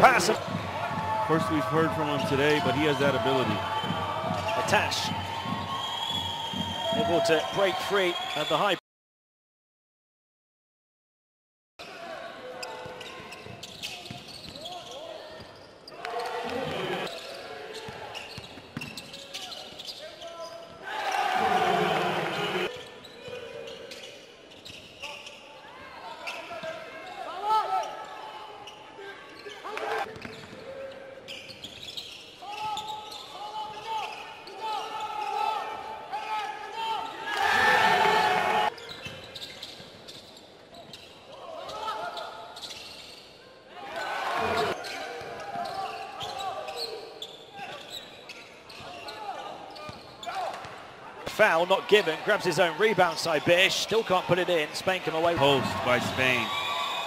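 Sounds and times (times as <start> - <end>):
bursts of crowd noise: 0.0 - 8.8, 20.8 - 22.7, 50.5 - 57.0.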